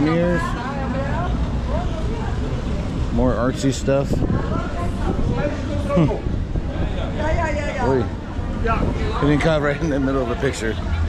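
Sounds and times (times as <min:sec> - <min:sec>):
faint voices of passers-by: 0:00.0 - 0:11.0
low street rumble: 0:00.0 - 0:11.0.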